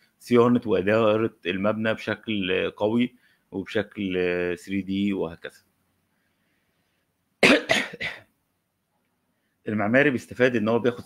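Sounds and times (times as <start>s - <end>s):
person coughing: 7.4s - 8.3s.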